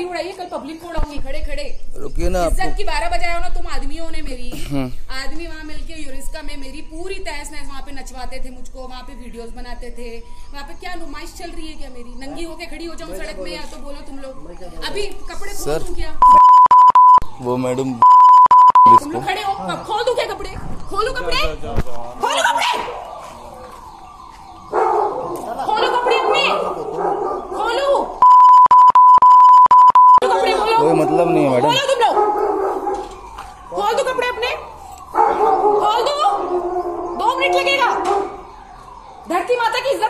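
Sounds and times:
censor bleep tone: 0:16.2 - 0:17.4, 0:18.0 - 0:19.1, 0:28.2 - 0:30.3
people arguing shouting: 0:18.8 - 0:23.2, 0:25.0 - 0:28.2, 0:30.2 - 0:33.2, 0:33.8 - 0:38.5
people shouting in an argument: 0:22.2 - 0:23.0, 0:30.2 - 0:32.2.

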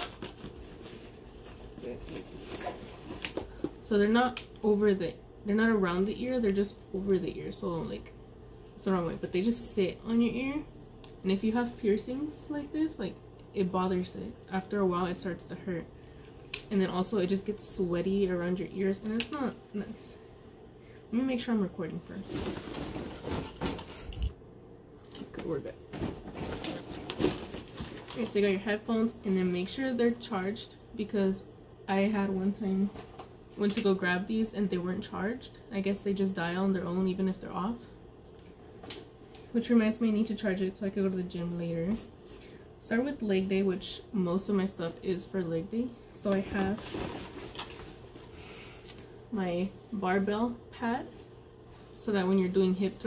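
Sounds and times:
headphones rustling and clicking: 0:46.2 - 0:48.2.

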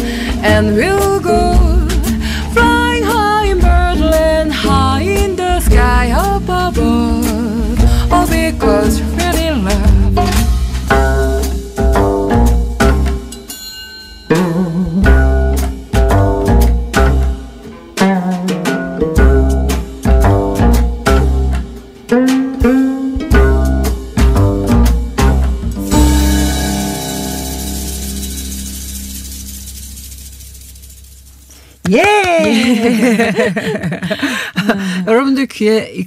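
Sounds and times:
deep bass notes: 0:00.0 - 0:13.3, 0:14.5 - 0:21.9, 0:22.5 - 0:31.5
plucked zither playing jazz: 0:00.0 - 0:13.6, 0:14.3 - 0:31.8.

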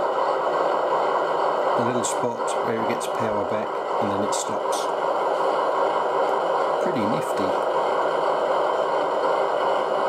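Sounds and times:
model diesel locomotive idling: 0:00.0 - 0:10.0.

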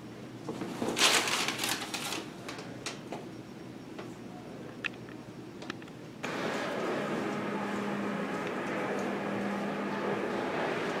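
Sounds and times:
paper rustling and crackling: 0:00.5 - 0:03.0.

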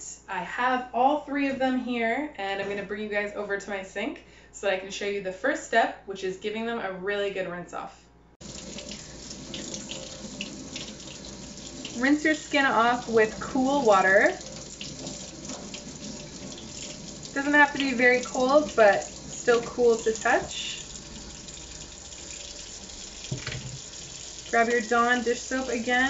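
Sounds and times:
faucet running into steel sink: 0:08.4 - 0:26.0.

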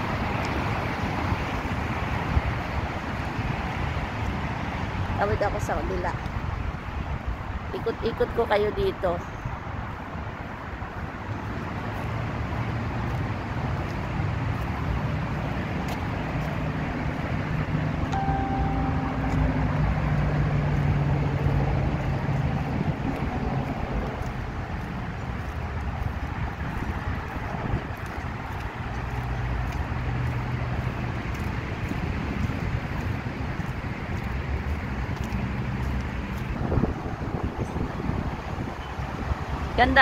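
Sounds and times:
road traffic: 0:00.0 - 0:40.0
vehicle engine hum: 0:00.0 - 0:40.0
wind on microphone: 0:19.5 - 0:25.0, 0:25.8 - 0:29.1, 0:30.9 - 0:39.8.

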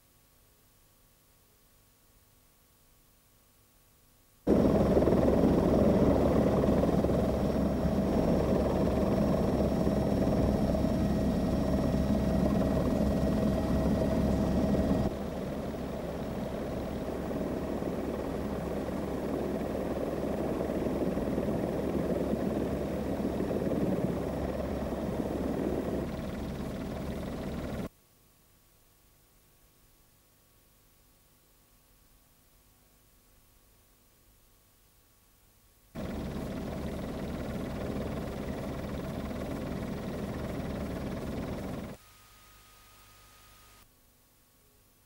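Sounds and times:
helicopter rotor and engine: 0:04.5 - 0:27.9, 0:36.0 - 0:42.0.

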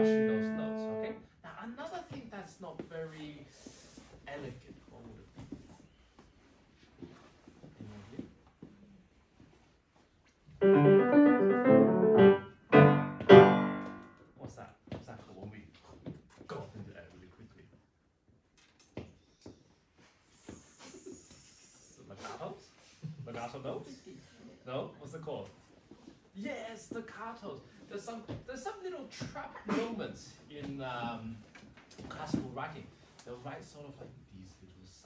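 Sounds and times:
grand piano runs: 0:10.6 - 0:14.1.

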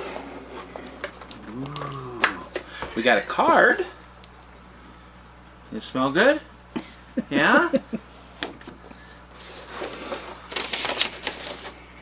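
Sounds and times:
paper and card rustling: 0:09.4 - 0:11.8
paper crinkling: 0:09.4 - 0:11.8.

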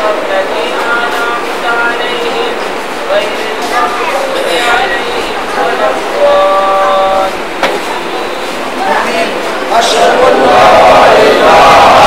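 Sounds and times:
man chanting melodically: 0:00.0 - 0:08.4, 0:09.7 - 0:12.0.

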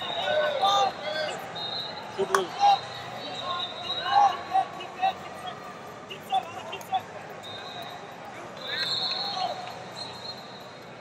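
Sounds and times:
coaches and spectators shouting: 0:00.0 - 0:10.4.

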